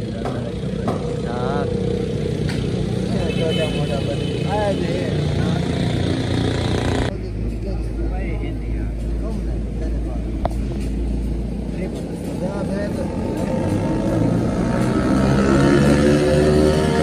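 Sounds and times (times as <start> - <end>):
men talking: 0.0 - 6.2, 7.1 - 16.4
vehicle engine rumble: 0.0 - 17.0.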